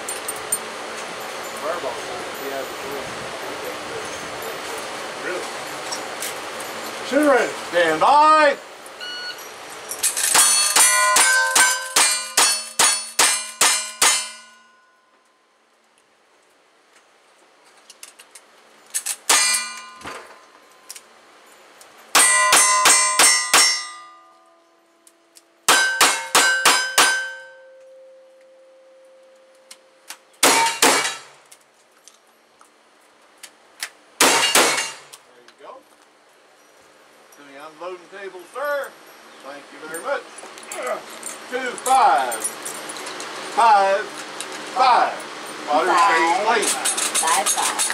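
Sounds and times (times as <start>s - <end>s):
steel target ringing: 10.3s - 15.1s, 19.3s - 20.5s, 22.1s - 24.7s, 25.7s - 29.7s, 30.4s - 31.4s, 34.2s - 35.1s
shotgun blasts: 34.2s - 35.1s.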